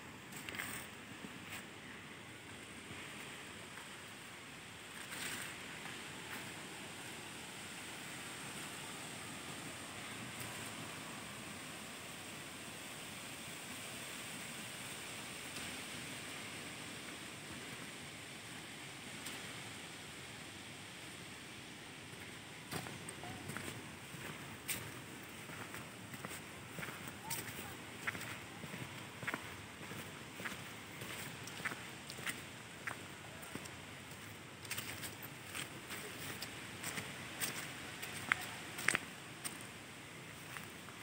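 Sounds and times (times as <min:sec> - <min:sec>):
wind rushing through trees: 0:00.0 - 0:41.0
foliage rustle: 0:00.1 - 0:41.0.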